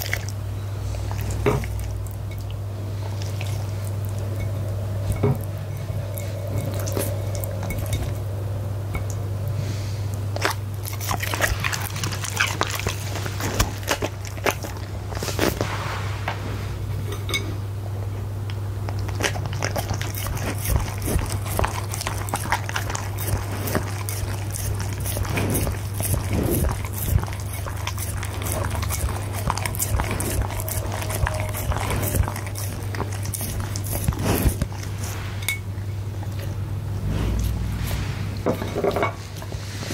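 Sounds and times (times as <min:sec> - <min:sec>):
dog chewing with wet clicks: 0:00.0 - 0:08.3, 0:08.9 - 0:15.6, 0:18.8 - 0:37.6
steady low hum: 0:00.0 - 0:39.9
dog licking a plate: 0:18.9 - 0:35.6.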